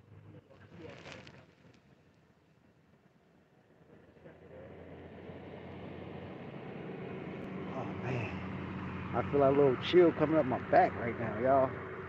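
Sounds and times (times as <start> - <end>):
tyres on road: 0.0 - 12.0
car engine approaching: 3.4 - 12.0.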